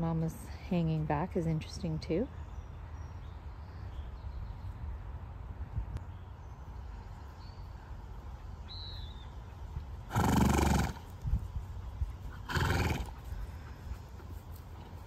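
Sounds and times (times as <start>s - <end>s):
horse snorting: 10.0s - 11.1s, 12.3s - 13.4s.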